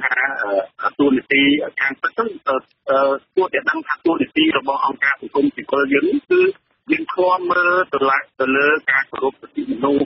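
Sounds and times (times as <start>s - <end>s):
person reading news: 0.0s - 10.0s.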